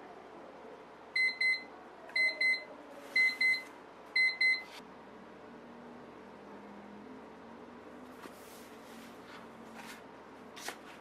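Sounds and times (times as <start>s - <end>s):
electronic timer alarm double beeps: 1.2s - 4.7s.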